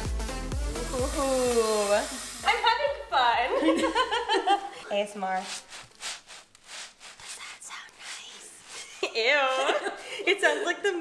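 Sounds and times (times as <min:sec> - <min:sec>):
sponge squelching with soap: 0:04.5 - 0:11.0.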